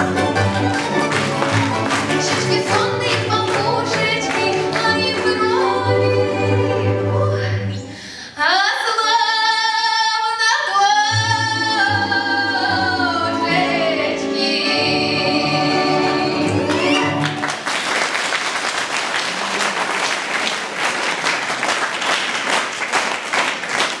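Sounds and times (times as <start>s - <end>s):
audience applause: 0.0s - 6.0s, 16.3s - 24.0s
folk instrument ensemble: 0.0s - 8.2s, 11.0s - 17.8s
woman singing folk song: 2.1s - 17.3s.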